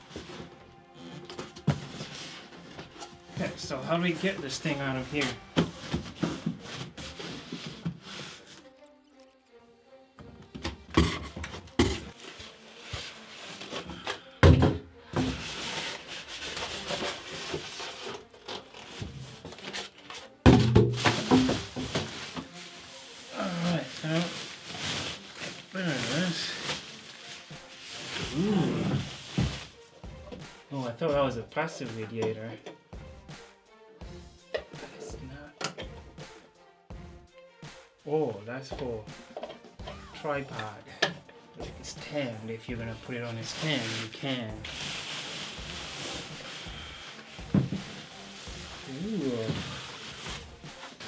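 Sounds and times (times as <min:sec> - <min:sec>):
cardboard and foam rubbed and knocked: 0:20.6 - 0:29.8, 0:43.4 - 0:51.0
plastic bag rustling: 0:21.0 - 0:29.8, 0:43.3 - 0:51.0.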